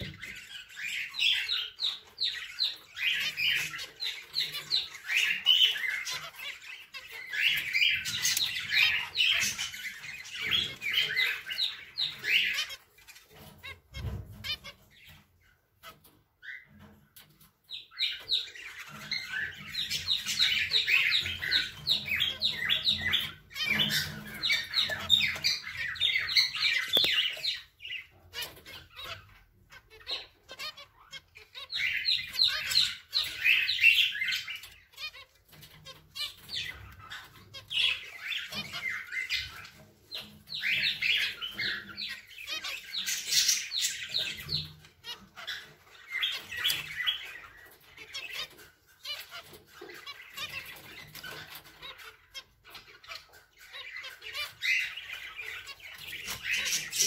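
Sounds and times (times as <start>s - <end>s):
finches chirping: 0.0s - 57.0s.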